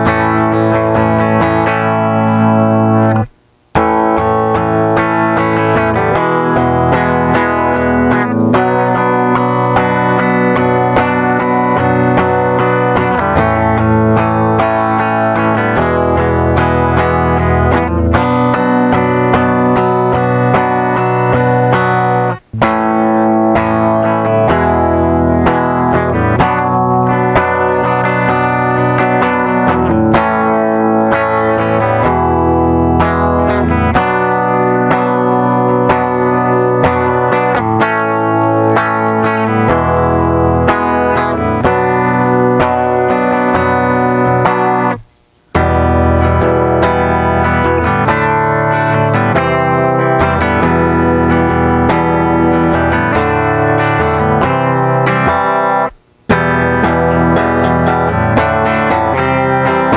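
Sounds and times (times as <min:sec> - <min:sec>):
electric guitar strumming chords: 0:00.0 - 0:59.9.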